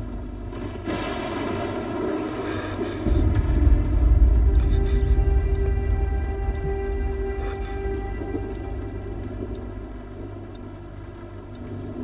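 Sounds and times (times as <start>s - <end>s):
deep rumble: 0.0s - 12.0s
low drone music: 0.0s - 12.0s.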